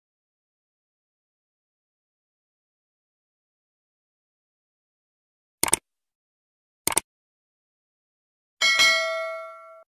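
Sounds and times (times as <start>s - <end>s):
notification bell ding: 8.6s - 9.9s.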